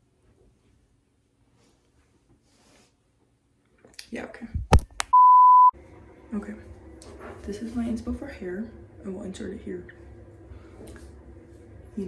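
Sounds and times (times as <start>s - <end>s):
electronic censor bleep: 5.1s - 5.8s.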